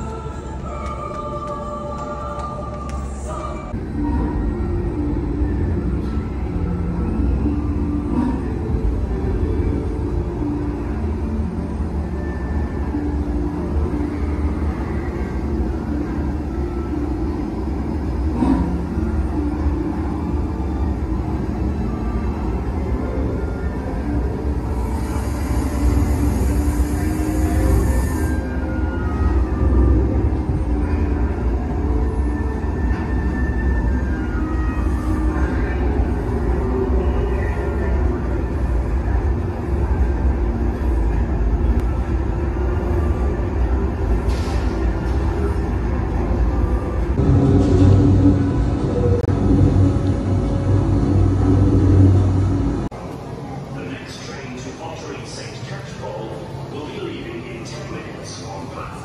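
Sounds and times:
eerie music: 0.0 - 52.9
steam locomotive rumble: 0.0 - 53.1
steam hiss: 24.8 - 28.4.

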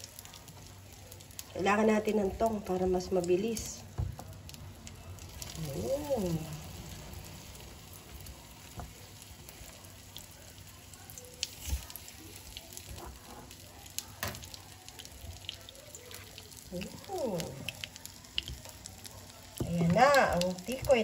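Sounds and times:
food sizzling in oil: 0.0 - 21.0.

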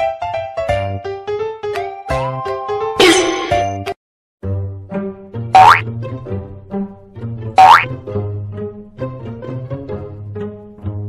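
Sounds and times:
bouncy children's music: 4.4 - 11.0
cartoon boing effects: 5.6 - 5.8, 7.6 - 7.9.

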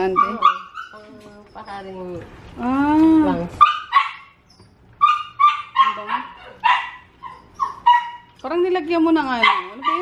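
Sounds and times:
small dog yipping and whining: 3.6 - 8.3.

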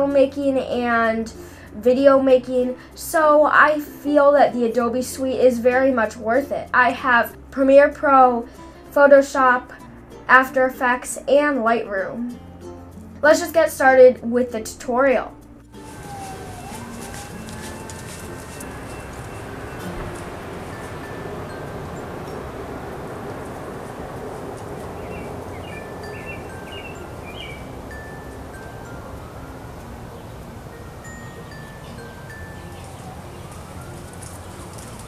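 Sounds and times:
outdoor background rush: 15.4 - 35.0
distant siren wailing: 15.7 - 35.0
wind chimes ringing: 15.8 - 35.0
bird chirps: 24.1 - 35.0.

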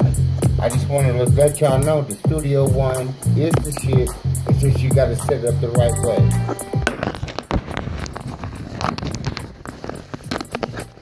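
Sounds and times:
phone microphone handling noise: 3.4 - 11.0.

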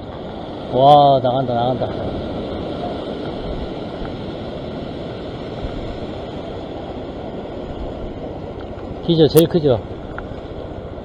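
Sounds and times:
ocean surf washing over rocks: 0.0 - 11.0
wind buffeting microphone: 0.0 - 11.0.

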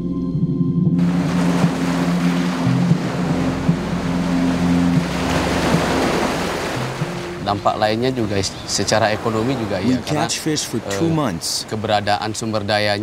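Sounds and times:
low music drone: 0.0 - 8.3
surf splashing over rocks: 1.0 - 13.0.

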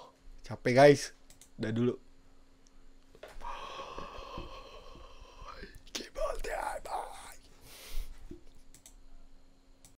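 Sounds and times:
sharp click: 1.2 - 1.6, 8.3 - 9.0.

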